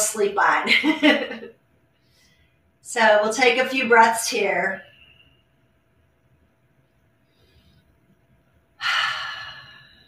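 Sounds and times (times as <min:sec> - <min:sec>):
woman breathing in deeply: 0:02.0 - 0:02.6, 0:07.2 - 0:08.1, 0:08.8 - 0:10.0.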